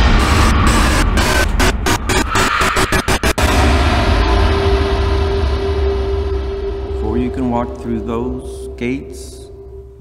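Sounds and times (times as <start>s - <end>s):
deep rumbling drone: 0.0s - 10.0s.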